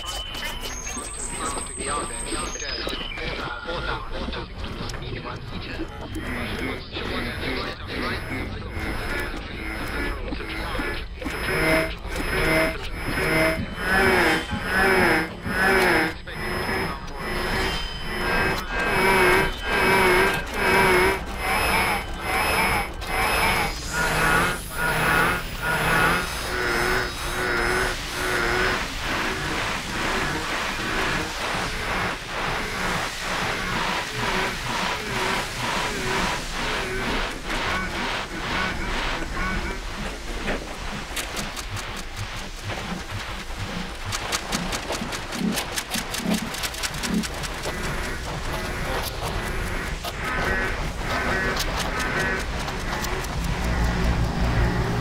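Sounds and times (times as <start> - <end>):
steady pulsing rhythm: 0.0 - 55.0
warbling radio signal: 6.2 - 55.0.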